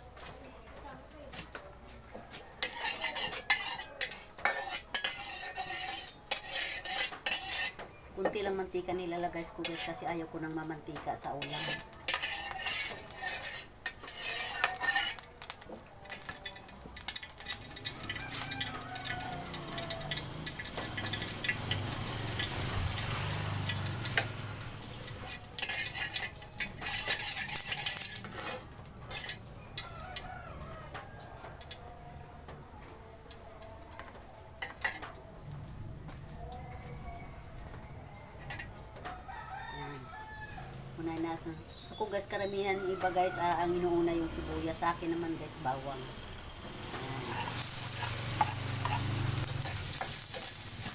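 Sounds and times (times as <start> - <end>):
metal spatula scraping wok: 2.6 - 8.8, 9.4 - 10.2, 11.1 - 29.5, 46.8 - 50.9.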